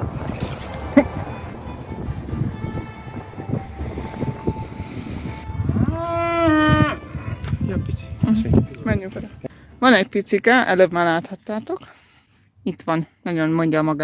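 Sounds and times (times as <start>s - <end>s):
cow mooing: 5.7s - 7.1s.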